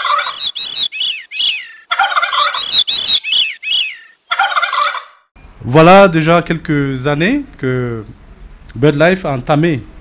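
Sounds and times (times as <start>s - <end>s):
bird calls: 0.0s - 5.3s.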